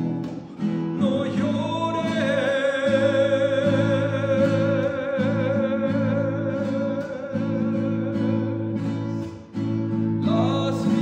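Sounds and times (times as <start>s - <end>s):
fingerpicked classical guitar: 0.0s - 11.0s
man singing: 0.0s - 11.0s.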